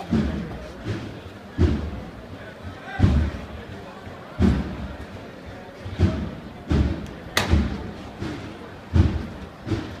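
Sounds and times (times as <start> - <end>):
bass drum thuds: 0.0 - 2.2, 3.0 - 3.6, 4.4 - 4.9, 5.9 - 10.0
crowd murmur: 0.0 - 10.0
sharp drum crack: 6.0 - 10.0.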